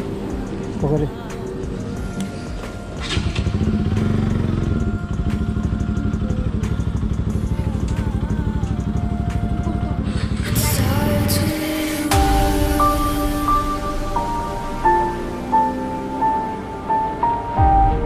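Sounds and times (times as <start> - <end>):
motorcycle engine idling: 0.0 - 11.5.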